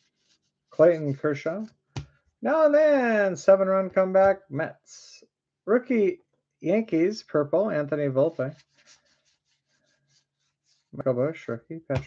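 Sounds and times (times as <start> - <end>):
trading cards swishing: 8.2 - 11.0.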